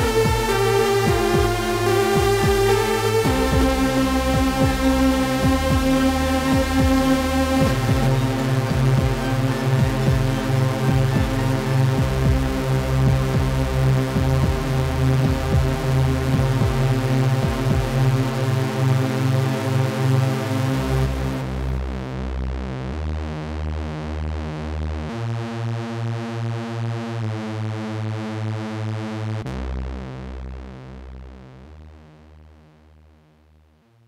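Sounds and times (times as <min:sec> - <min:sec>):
hissing noise: 0:00.0 - 0:18.7
repeating synth chords: 0:00.0 - 0:21.9
pulsing synth bass line: 0:00.0 - 0:32.9.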